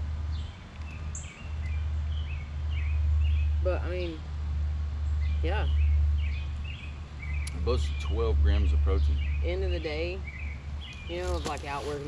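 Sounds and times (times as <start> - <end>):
birds chirping: 0.0 - 4.3, 5.0 - 12.0
steady low rumble: 0.0 - 12.0.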